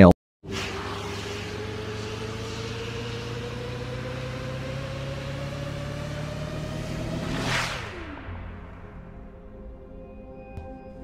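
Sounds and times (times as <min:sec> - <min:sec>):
low drone with rising tone: 0:00.4 - 0:11.0.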